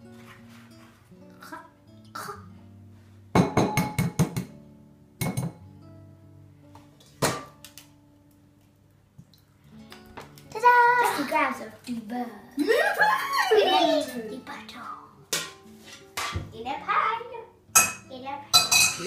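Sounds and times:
plucked guitar music: 0.0s - 8.9s, 9.5s - 19.0s.

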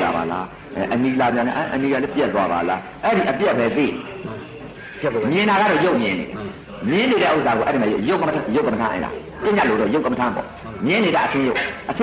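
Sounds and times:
man speaking with quavering voice: 0.0s - 12.0s.

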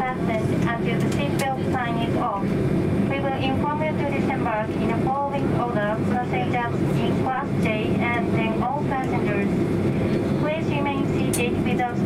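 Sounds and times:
air conditioning running: 0.0s - 12.0s
aircraft cabin hum: 0.0s - 12.0s
announcement over cabin speaker: 0.0s - 12.0s.

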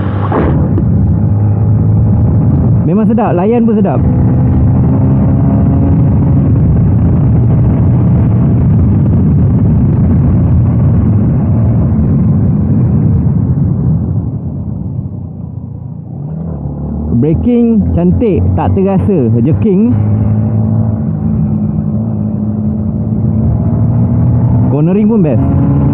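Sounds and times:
motorcycle engine rumble: 0.0s - 25.9s
wind rushing over microphone: 0.0s - 25.9s.

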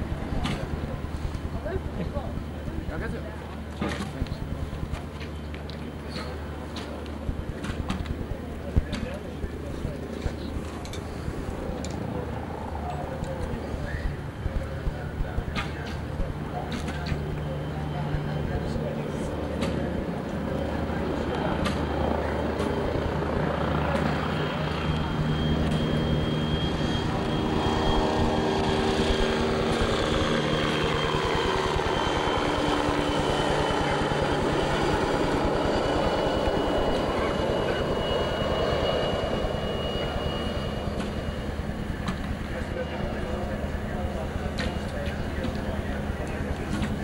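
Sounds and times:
engine drone: 0.0s - 47.0s
faint background voices: 0.0s - 47.0s.

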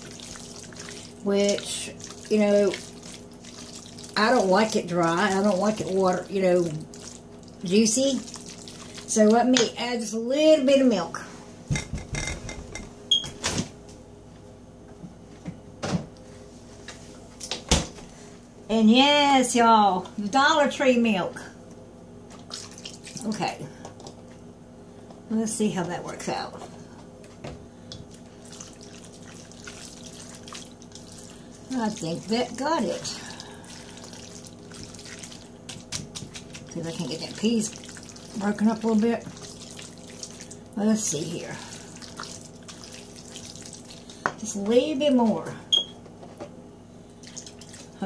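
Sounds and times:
spatula stirring noodles in metal bowl: 0.0s - 9.2s
faint steady hum: 0.0s - 48.0s
milk pouring into steel bowl: 41.5s - 44.2s.

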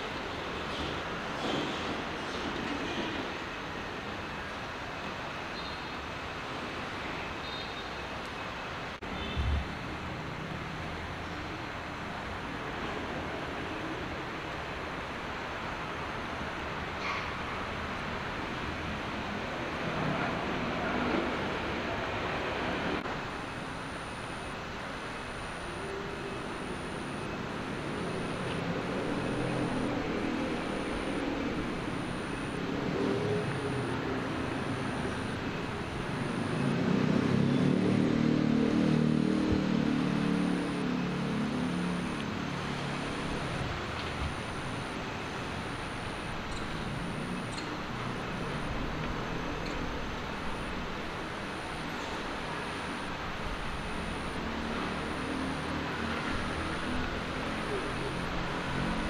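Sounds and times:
road traffic rumble: 0.0s - 59.0s
vehicle passing: 26.0s - 46.0s.

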